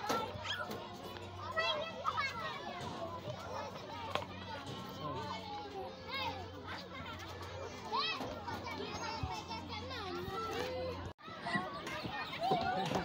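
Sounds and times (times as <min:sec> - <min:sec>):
children calling and chattering: 0:00.0 - 0:13.0.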